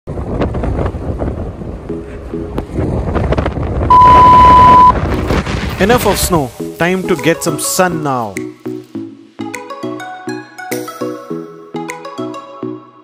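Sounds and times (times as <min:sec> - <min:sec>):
gusty wind buffeting microphone: 0:00.1 - 0:06.6
loud high beep: 0:03.9 - 0:04.9.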